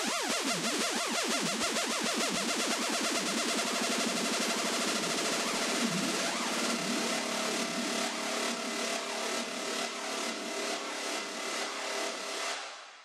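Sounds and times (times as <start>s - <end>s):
electronic dance music: 5.0s - 11.4s.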